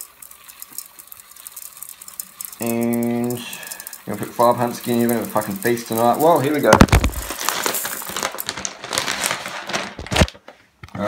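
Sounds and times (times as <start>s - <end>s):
rice pouring into a pot: 0.0s - 9.8s.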